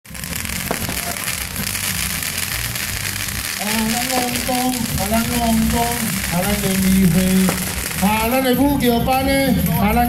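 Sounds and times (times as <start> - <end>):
firecrackers crackling: 0.1 - 9.7.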